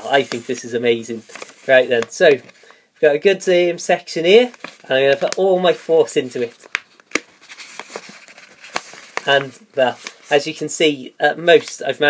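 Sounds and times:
synthetic paper crinkling and snapping: 1.2 - 2.6, 4.4 - 5.5, 6.4 - 10.3.

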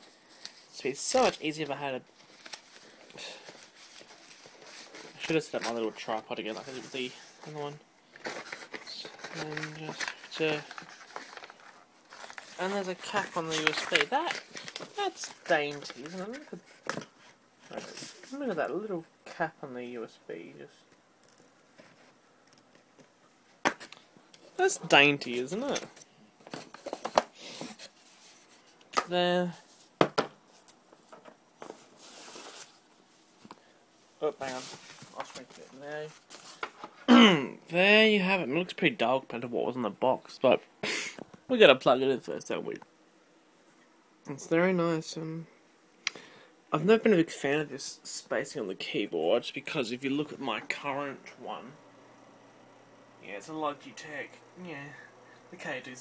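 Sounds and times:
faint cardboard and paper rustling: 0.0 - 19.8, 20.8 - 37.1
cardboard rustling slide: 31.6 - 32.8.

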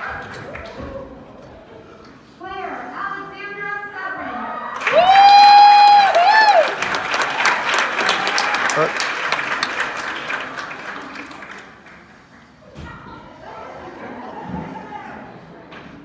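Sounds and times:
audience clapping: 0.0 - 0.8, 4.8 - 12.6
audience whooping: 4.7 - 9.0.

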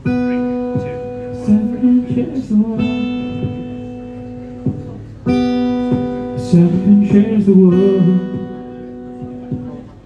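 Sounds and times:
acoustic guitar strumming chords: 0.0 - 10.0
person singing: 0.0 - 10.0.

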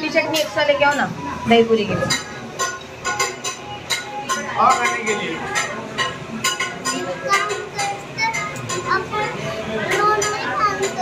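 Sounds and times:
people talking: 0.0 - 2.3, 4.2 - 11.0
child's voice: 7.3 - 11.0.

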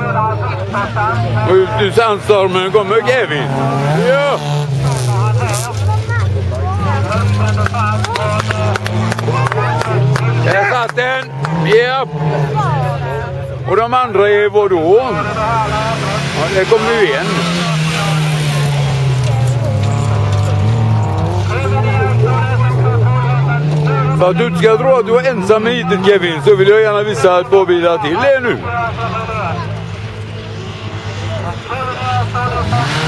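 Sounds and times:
man talking: 0.0 - 5.9, 6.9 - 18.8, 21.3 - 29.8, 31.3 - 33.0
racing car engines: 0.0 - 33.0.

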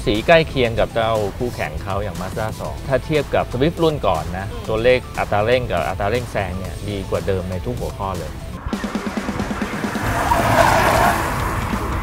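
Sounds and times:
tyres squealing: 8.4 - 12.0.

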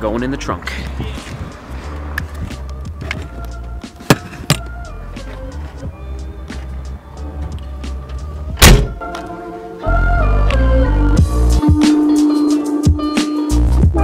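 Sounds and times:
background music: 0.0 - 14.0
car trunk lid slamming: 8.6 - 9.0.

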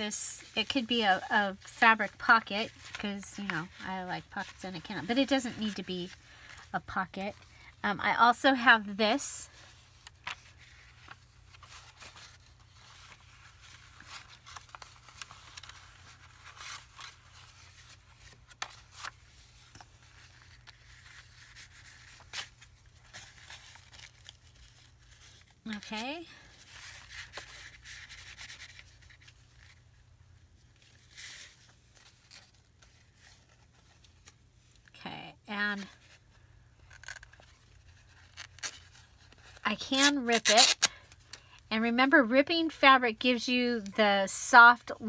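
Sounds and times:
hands rustling fabric and paper: 9.0 - 34.8.

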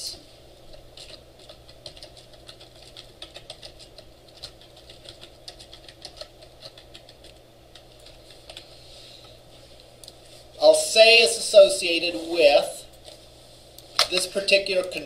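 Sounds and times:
keyboard typing: 0.7 - 8.7.

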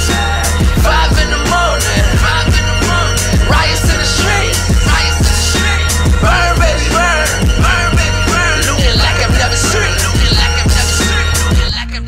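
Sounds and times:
deep bass hits: 0.0 - 11.8
rapping over a beat: 0.0 - 12.0.

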